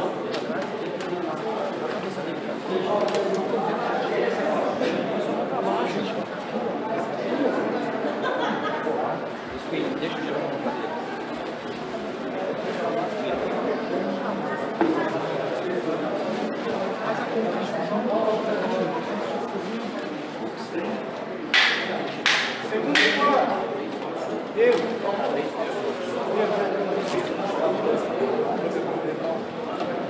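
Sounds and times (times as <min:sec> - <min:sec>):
voices in echoing hall: 0:00.0 - 0:30.0.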